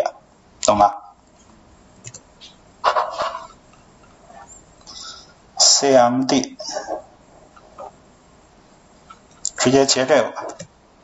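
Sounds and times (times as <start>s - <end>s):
man coughing: 6.6s - 7.0s.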